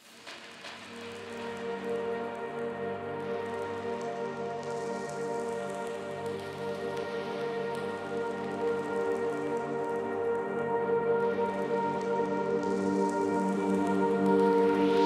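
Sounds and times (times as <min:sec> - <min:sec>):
ambient music with sustained chords: 0:00.2 - 0:15.0.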